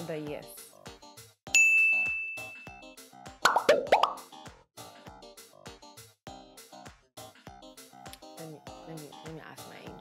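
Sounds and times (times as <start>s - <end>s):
bright ding: 1.6s - 2.7s
bubbly plops: 3.4s - 4.2s.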